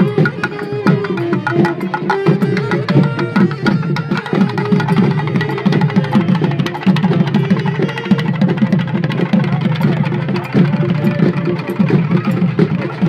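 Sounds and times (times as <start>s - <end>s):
folk drum ensemble: 0.0s - 13.0s.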